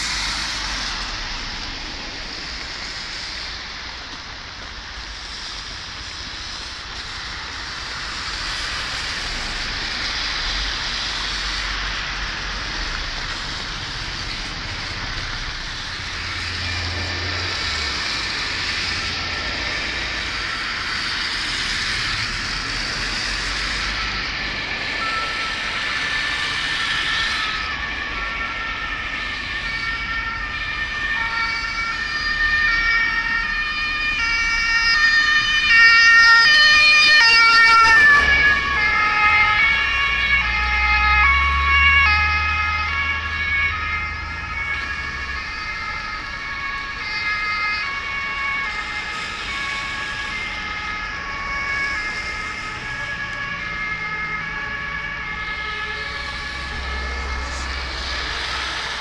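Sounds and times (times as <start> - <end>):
steady rushing noise: 0.0 - 29.6, 36.6 - 40.6, 54.6 - 59.0
two-tone emergency siren: 5.6 - 59.0.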